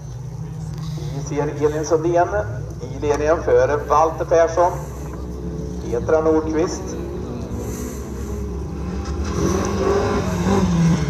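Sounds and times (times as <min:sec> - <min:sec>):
race car engine revving: 0:00.0 - 0:11.0.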